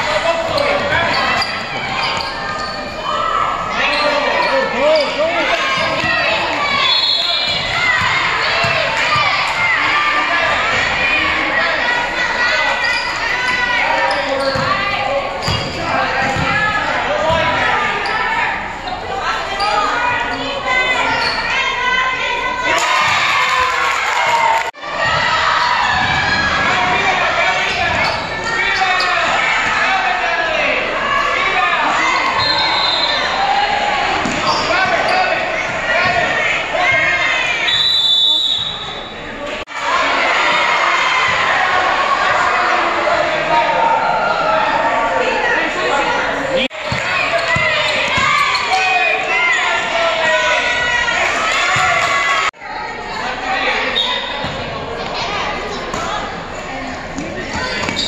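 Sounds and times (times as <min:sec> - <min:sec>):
voices calling and shouting: 0:00.0 - 0:58.0.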